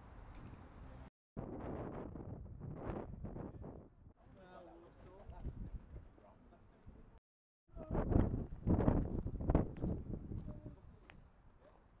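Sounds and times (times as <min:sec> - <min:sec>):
wind buffeting microphone: 0:01.4 - 0:04.1, 0:05.3 - 0:06.1, 0:07.7 - 0:11.3.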